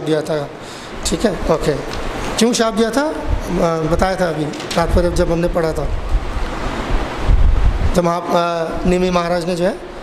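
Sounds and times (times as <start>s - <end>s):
microphone handling rumble: 3.2s - 8.0s.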